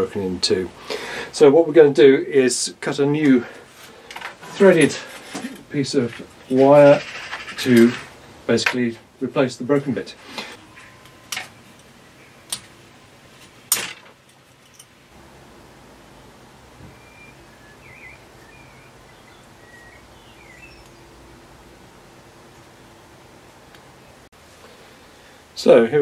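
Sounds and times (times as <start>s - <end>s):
faint bird chirps: 16.8s - 21.2s.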